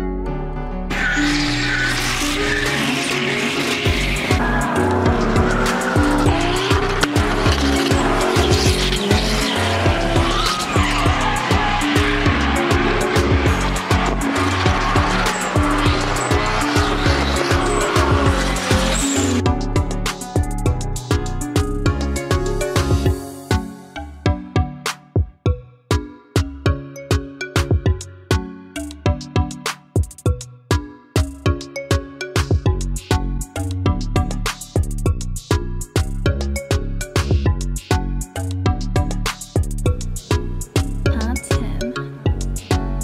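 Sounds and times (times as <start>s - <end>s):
background music with bass line: 0.0s - 43.0s
tyres squealing: 0.9s - 19.4s
car engine revving: 1.0s - 19.5s.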